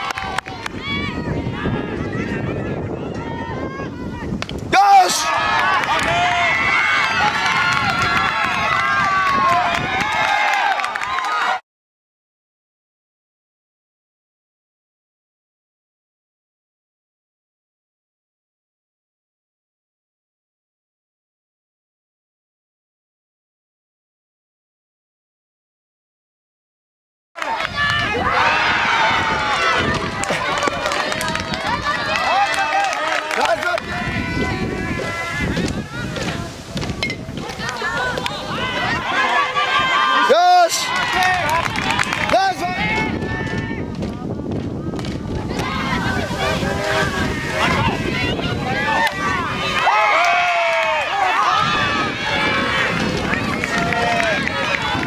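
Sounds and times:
young voices shouting: 0:00.1 - 0:11.6, 0:27.4 - 0:36.7, 0:37.4 - 0:43.9, 0:45.4 - 0:55.0.

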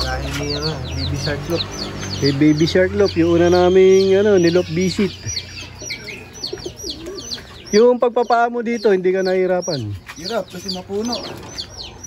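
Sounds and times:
high falling bird chirps: 0:00.0 - 0:12.0
pigeons cooing: 0:00.0 - 0:12.0.

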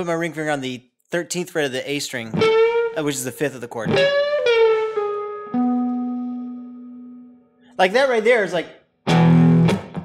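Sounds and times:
electric guitar single notes: 0:02.3 - 0:07.7.

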